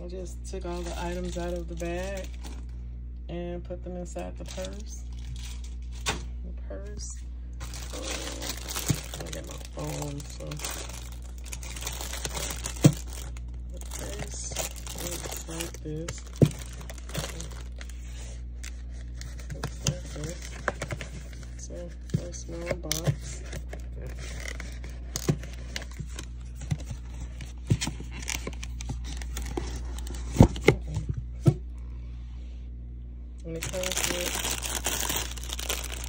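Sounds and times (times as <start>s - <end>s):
plastic wrapping crinkling: 0.5s - 2.7s, 4.4s - 6.3s, 7.6s - 30.8s, 33.5s - 36.0s.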